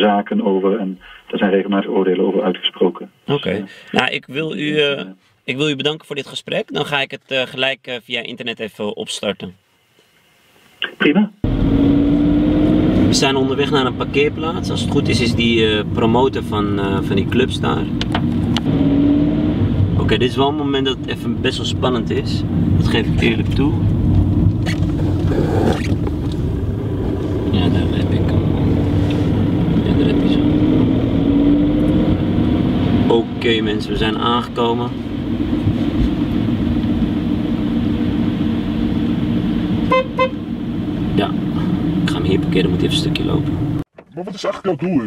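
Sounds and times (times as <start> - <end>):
car engine and road rumble: 11.4 - 44.0
car horn toots: 39.8 - 40.5.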